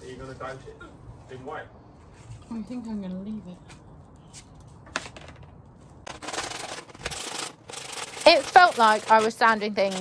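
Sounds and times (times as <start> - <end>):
sandpaper rubbing on mesh grille: 6.3 - 10.0.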